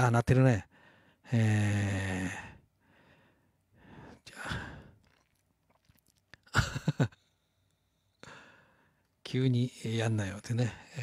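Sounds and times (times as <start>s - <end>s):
man sighing: 1.7s - 5.0s.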